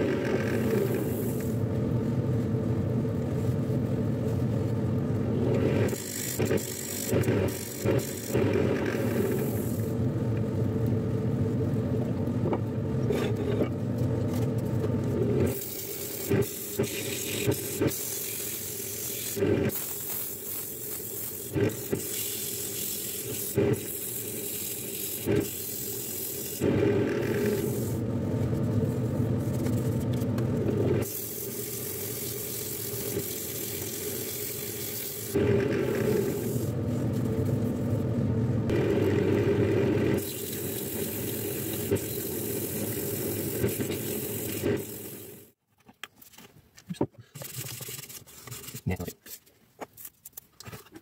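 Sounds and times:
lathe motor humming: 0:24.6 - 0:28.1.

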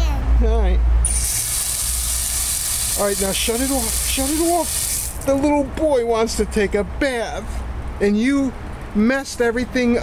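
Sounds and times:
water spraying under pressure: 0:01.0 - 0:05.4
valve whistle: 0:01.1 - 0:03.0.

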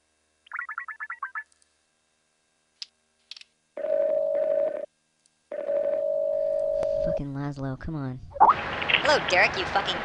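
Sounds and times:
phone ringback tone: 0:03.8 - 0:04.9, 0:05.5 - 0:07.2.

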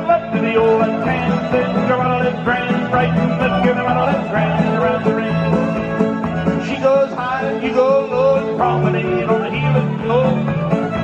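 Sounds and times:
country square dance music: 0:00.0 - 0:11.0.

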